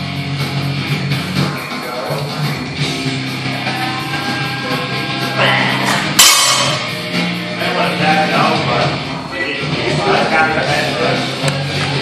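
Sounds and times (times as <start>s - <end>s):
rock music: 0.0s - 12.0s
barbell dropped with metallic clang: 5.9s - 6.9s.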